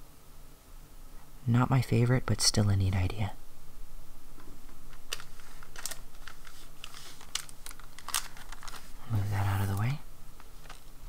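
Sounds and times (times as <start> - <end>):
plastic packet clicks and crinkles: 4.9 - 11.0.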